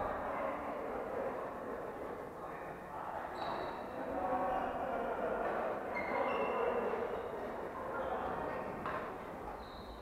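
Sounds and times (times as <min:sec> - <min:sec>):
distant voices in a hall: 0:00.0 - 0:10.0
court shoes squeaking on floor: 0:09.6 - 0:10.0.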